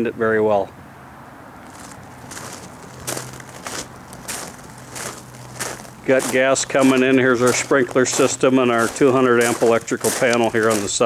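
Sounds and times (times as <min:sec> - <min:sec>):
footsteps crunching on gravel: 0:01.6 - 0:11.0.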